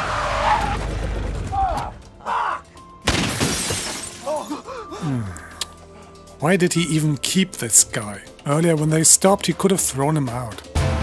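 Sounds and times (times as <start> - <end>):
glass breaking: 3.0 - 4.5.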